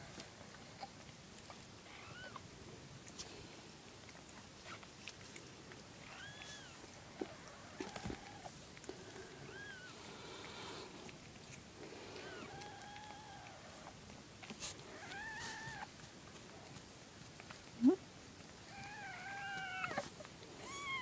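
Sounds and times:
soft rustles: 3.0s - 21.0s
kittens mewing: 18.7s - 21.0s.

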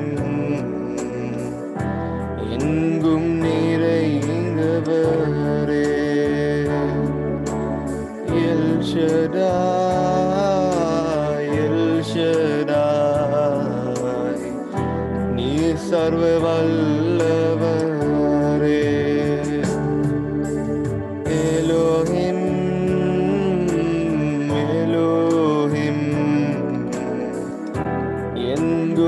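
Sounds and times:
slow worship song on keyboard: 0.0s - 29.0s.

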